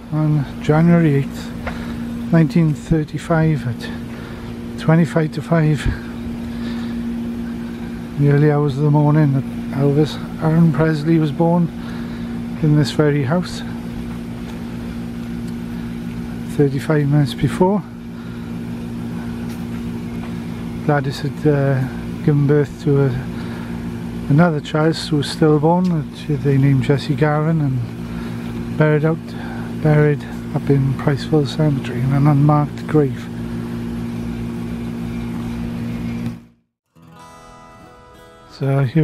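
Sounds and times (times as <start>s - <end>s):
low mechanical hum: 0.0s - 39.0s
steady motor drone: 0.0s - 39.0s.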